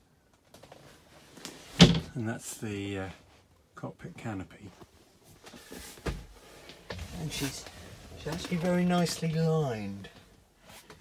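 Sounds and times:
faint handling noise: 4.6s - 11.0s.

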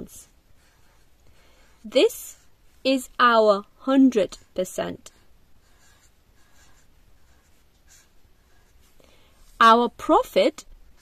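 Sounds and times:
pen scratching on paper: 0.5s - 2.6s, 4.4s - 11.0s.

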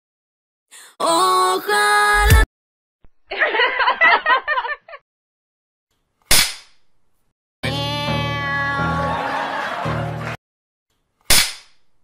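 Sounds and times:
music: 1.3s - 2.4s, 7.6s - 10.4s.

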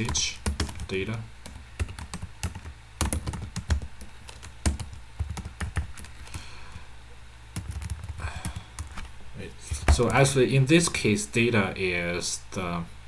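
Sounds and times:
computer keyboard typing: 0.0s - 6.4s, 7.6s - 9.1s.

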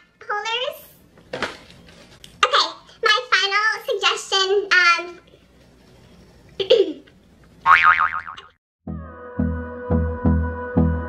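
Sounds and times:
cartoon boing sound effect: 7.7s - 8.6s.

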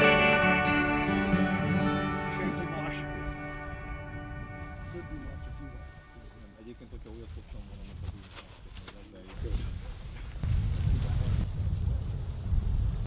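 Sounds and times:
low rumbling noise: 9.6s - 13.0s.

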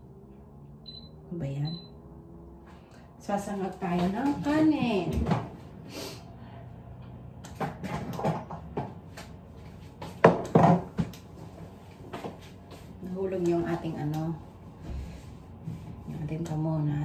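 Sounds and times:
knocks and rattles of handled items: 7.6s - 12.5s.

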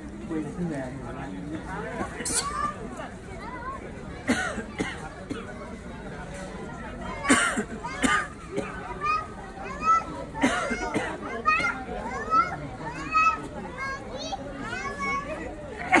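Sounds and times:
children chattering and shouting: 0.0s - 16.0s.

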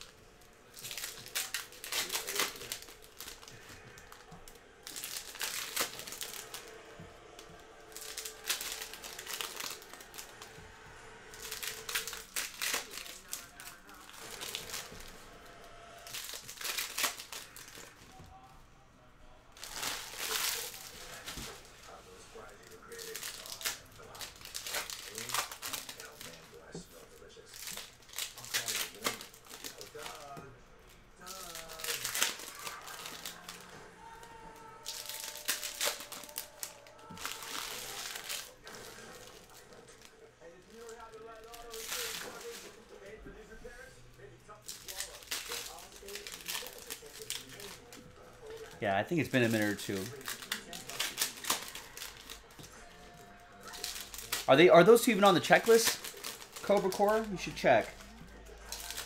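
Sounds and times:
cards being handled: 0.0s - 18.5s, 19.6s - 59.0s
wrappers crinkling and tearing: 0.0s - 18.6s, 19.2s - 59.0s.

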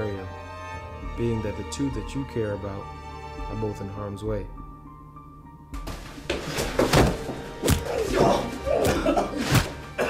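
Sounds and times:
dramatic film music: 0.0s - 10.0s.

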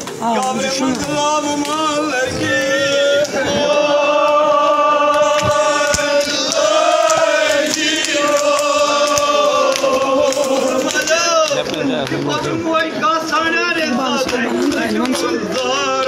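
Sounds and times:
men chanting in held notes: 0.3s - 11.5s.

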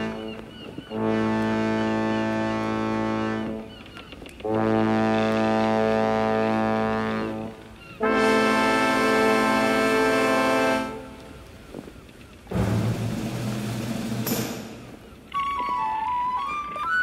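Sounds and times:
ship's horn blasts: 0.9s - 3.7s, 4.4s - 11.4s.

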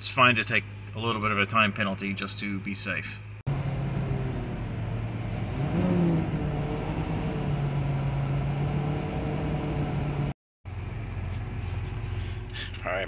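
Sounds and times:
diesel truck engine droning: 2.2s - 13.0s.

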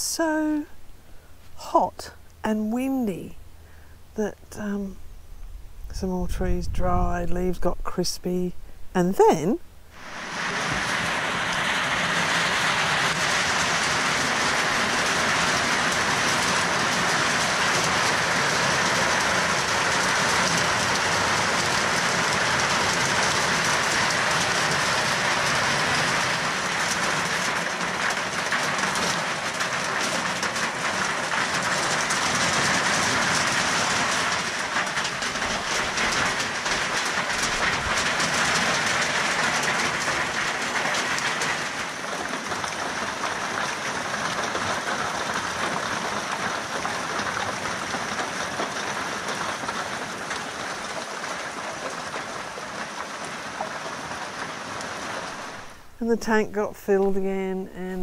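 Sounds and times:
heavy rain on metal roof: 0.0s - 2.3s, 9.2s - 56.4s.

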